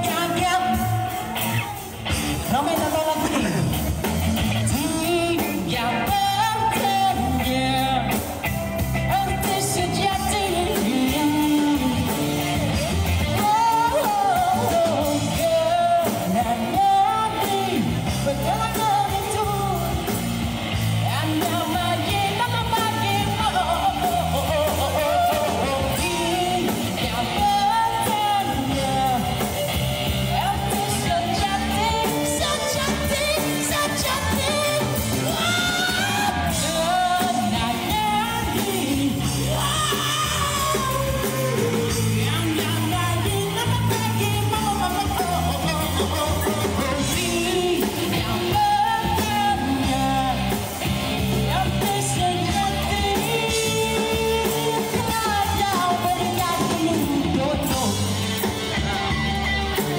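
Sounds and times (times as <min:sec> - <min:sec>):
amplified instrumental accompaniment: 0:00.0 - 0:59.9
live band backing: 0:00.0 - 0:59.9
man singing into a microphone: 0:00.0 - 0:59.9.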